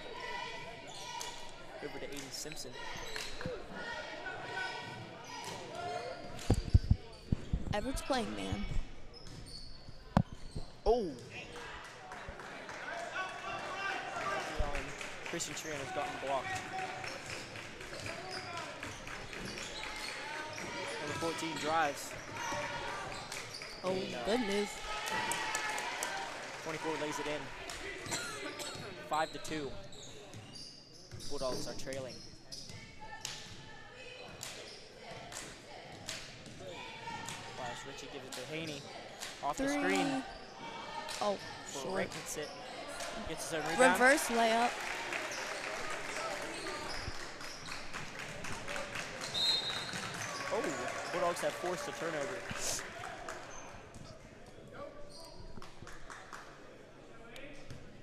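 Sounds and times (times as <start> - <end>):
crowd chatter and shouts: 0.0 - 9.2, 10.2 - 30.4, 32.5 - 55.5.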